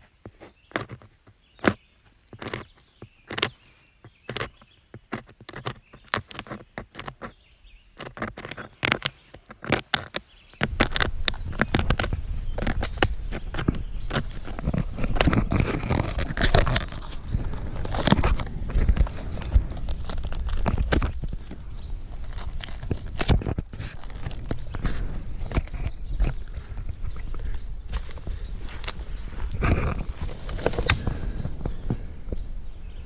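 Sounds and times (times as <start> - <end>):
rustling and scraping close by: 0.0 - 33.0
larva chewing wood crunching clicks: 0.3 - 32.5.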